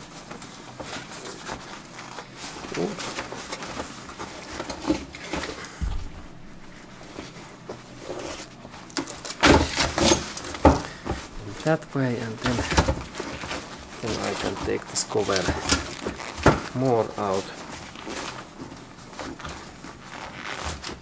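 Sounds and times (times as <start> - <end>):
seat cover rustling and scraping: 0.0 - 8.9, 17.3 - 21.0
dull thump: 5.8 - 6.9.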